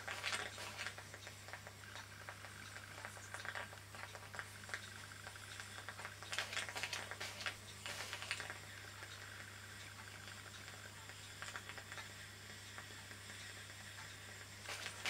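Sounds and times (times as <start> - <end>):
low hum and faint hiss: 0.0 - 15.0.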